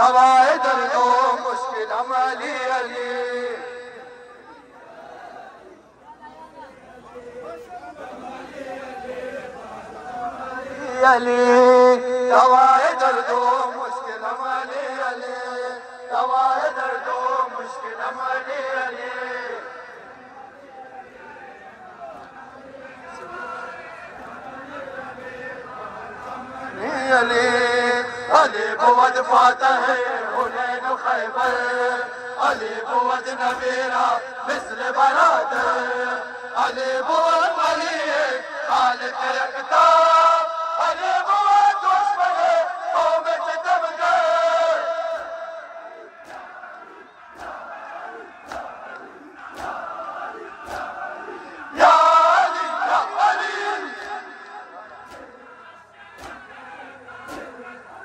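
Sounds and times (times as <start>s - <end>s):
person chanting a lament: 0.0s - 5.9s, 6.6s - 58.0s.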